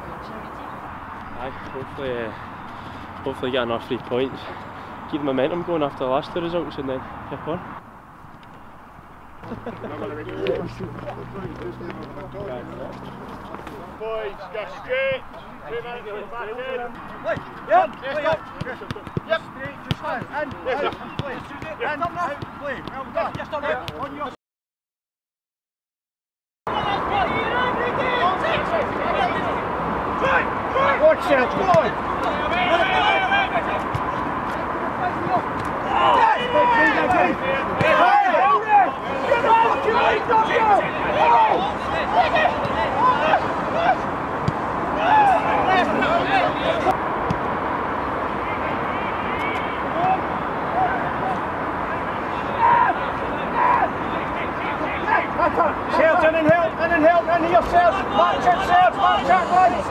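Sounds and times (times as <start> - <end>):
steady background noise: 0.0 - 24.3, 26.7 - 59.9
players shouting: 9.5 - 24.3, 26.7 - 59.9
footballs kicked thuds: 17.2 - 24.1, 44.4 - 44.7.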